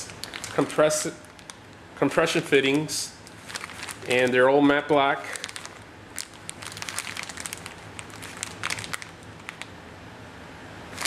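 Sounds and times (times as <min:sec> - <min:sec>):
plastic bags crinkling: 0:00.0 - 0:09.7.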